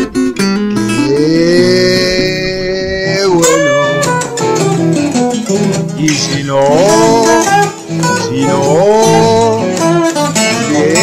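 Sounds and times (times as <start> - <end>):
acoustic guitar: 0.0 - 11.0
person singing long note: 0.8 - 4.2.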